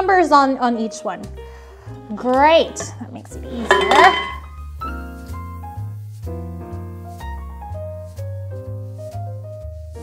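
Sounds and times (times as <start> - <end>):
background music: 0.0 - 10.0
metal rails clanking: 3.7 - 4.4.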